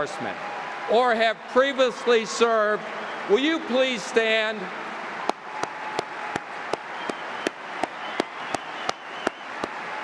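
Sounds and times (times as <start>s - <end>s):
audience applauding: 0.0s - 10.0s
sharp single claps: 5.2s - 9.9s.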